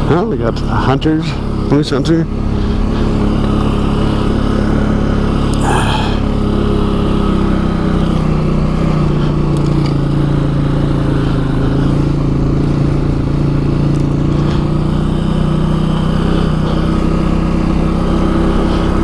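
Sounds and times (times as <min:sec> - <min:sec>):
quad bike engine running: 0:00.0 - 0:19.0.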